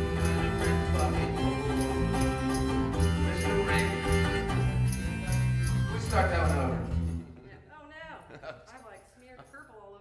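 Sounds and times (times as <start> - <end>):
shaker keeping time: 0.0 - 7.2
strummed ukulele: 0.0 - 7.2
bass guitar line: 0.0 - 7.4.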